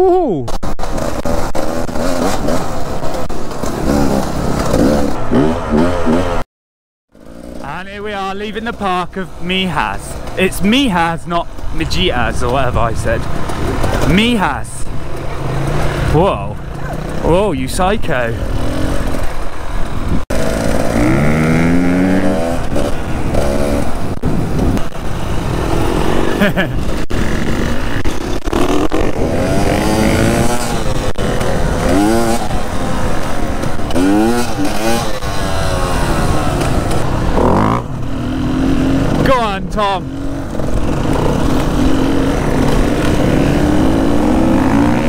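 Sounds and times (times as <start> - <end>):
bike rattling: 0.4 - 6.4, 7.2 - 45.0
dirt bike engine revving: 0.6 - 6.4, 7.2 - 45.0
wind noise: 17.8 - 20.3, 20.9 - 34.2.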